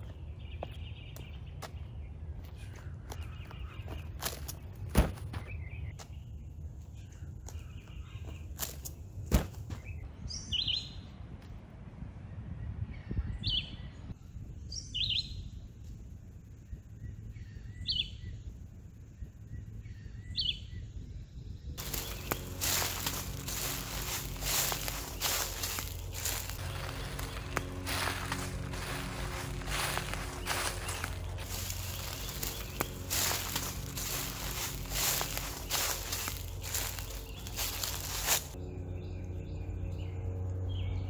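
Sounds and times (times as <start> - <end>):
low outdoor rumble: 0.0 - 41.0
bird chirping: 19.4 - 41.0
dense rustling and crackling: 21.8 - 38.6.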